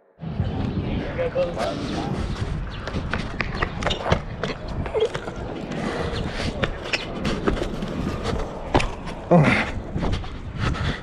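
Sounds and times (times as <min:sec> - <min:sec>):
steady low rumble: 0:00.0 - 0:11.0
footsteps on stone paving: 0:01.5 - 0:11.0.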